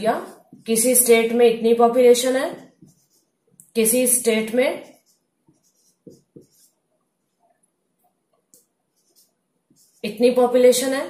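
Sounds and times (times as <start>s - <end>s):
marker scratching on whiteboard: 0.0s - 1.4s, 2.0s - 7.5s, 8.5s - 11.0s.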